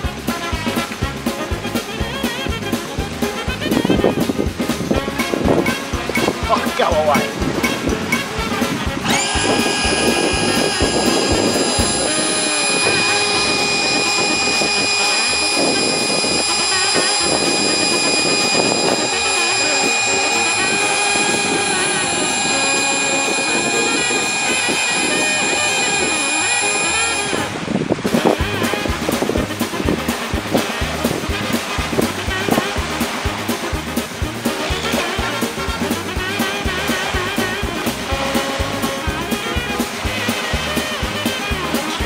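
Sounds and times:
background music: 0:00.0 - 0:26.1
electric air pump whining: 0:06.2 - 0:42.0.

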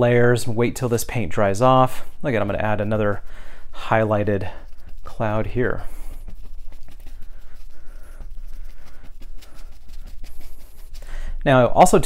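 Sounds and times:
paintbrush dabbing on canvas: 0:01.4 - 0:12.0.

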